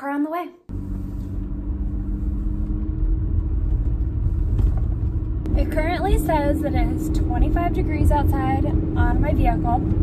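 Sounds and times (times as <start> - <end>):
car engine and road noise: 0.7 - 10.0.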